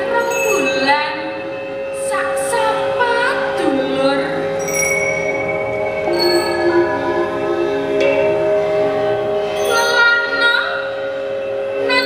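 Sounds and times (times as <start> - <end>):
metal bells and metallophones ringing: 0.0 - 12.0.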